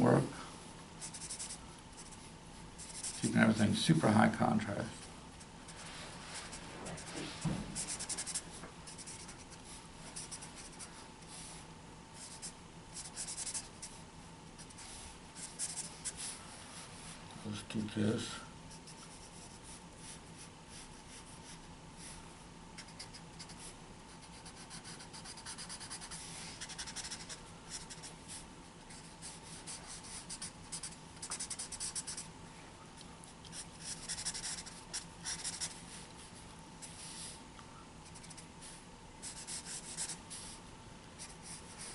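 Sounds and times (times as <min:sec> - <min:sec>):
faint room hum: 0:00.0 - 0:41.9
marker scratching on paper: 0:01.0 - 0:03.3, 0:05.7 - 0:07.1, 0:07.8 - 0:09.5, 0:10.2 - 0:10.9, 0:12.2 - 0:13.9, 0:14.6 - 0:16.4, 0:22.8 - 0:28.1, 0:28.9 - 0:32.3, 0:33.5 - 0:35.8, 0:38.0 - 0:38.4, 0:39.2 - 0:40.6, 0:41.2 - 0:41.9.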